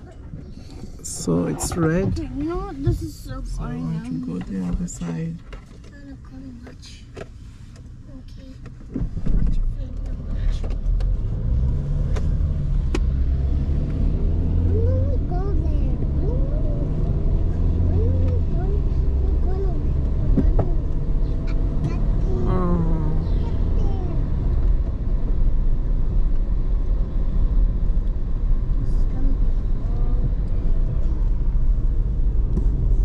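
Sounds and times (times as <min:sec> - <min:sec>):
car engine and road rumble: 0:00.0 - 0:33.0.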